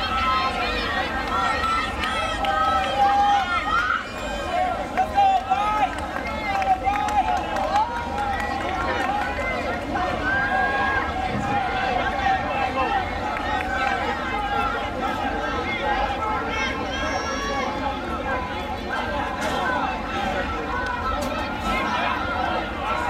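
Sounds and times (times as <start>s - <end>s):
spectators shouting and cheering: 0.0s - 23.0s.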